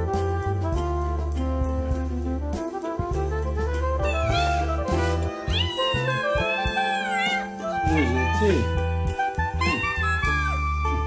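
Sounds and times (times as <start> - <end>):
cat meowing: 4.0 - 8.7, 9.6 - 10.6.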